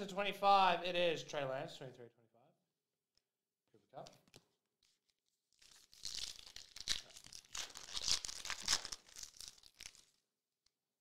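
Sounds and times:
foil wrapper tearing and crinkling: 0:04.8 - 0:10.3.

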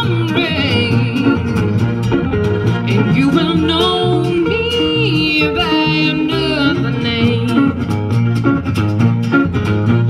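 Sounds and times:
strummed acoustic guitars: 0:00.0 - 0:10.0
sustained melody line: 0:00.0 - 0:10.0
upright bass: 0:00.0 - 0:10.0.

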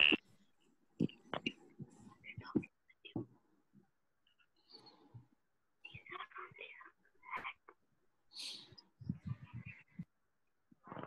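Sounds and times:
faint whispered voices: 0:01.0 - 0:03.5, 0:05.8 - 0:10.2.

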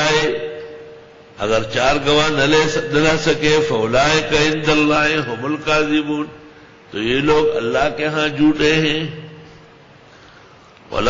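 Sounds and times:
man chanting melodic recitation: 0:00.0 - 0:00.8, 0:01.4 - 0:09.4.

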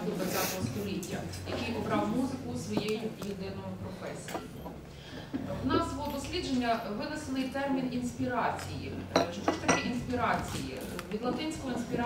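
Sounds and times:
woman's voice: 0:00.0 - 0:04.4, 0:05.6 - 0:12.0.

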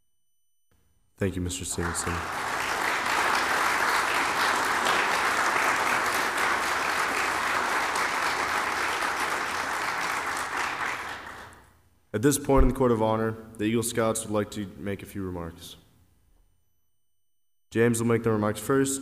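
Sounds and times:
audience applauding: 0:01.7 - 0:11.7.

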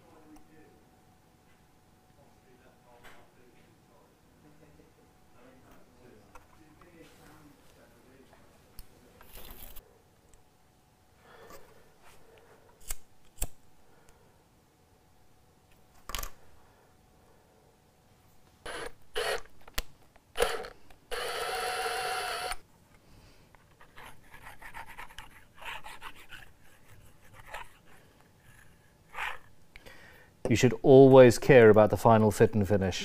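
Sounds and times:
small sharp clicks and snips: 0:12.8 - 0:13.6.

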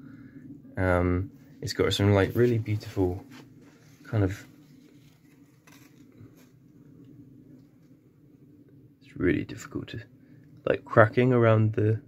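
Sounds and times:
low steady hum: 0:00.0 - 0:12.0
soft rustles and light taps: 0:02.3 - 0:06.6.

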